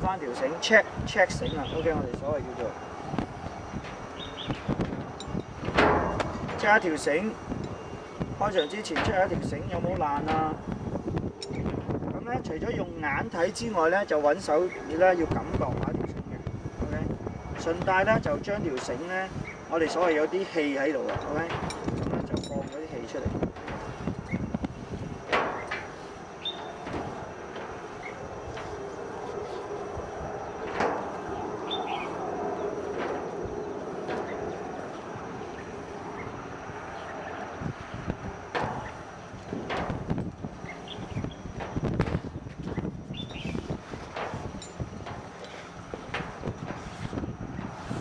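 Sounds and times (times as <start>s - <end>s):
noisy rustle: 0.0s - 48.0s
wind rumble on microphone: 0.0s - 48.0s
rope and metal hardware clicking: 1.4s - 11.9s, 17.6s - 37.2s, 38.0s - 48.0s.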